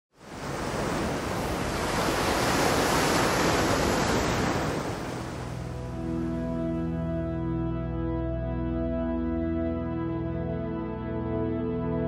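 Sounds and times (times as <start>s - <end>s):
ocean waves washing: 0.2s - 6.6s
music: 5.4s - 12.0s.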